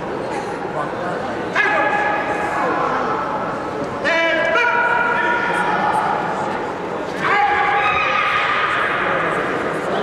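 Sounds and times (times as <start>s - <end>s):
voices murmuring in echoing hall: 0.0s - 10.0s
loud high-pitched shout: 1.5s - 2.4s, 7.2s - 9.3s.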